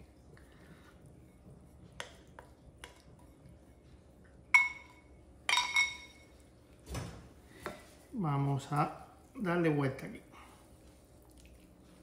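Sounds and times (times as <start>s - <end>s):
spoon clinking glass bowl: 4.5s - 6.3s.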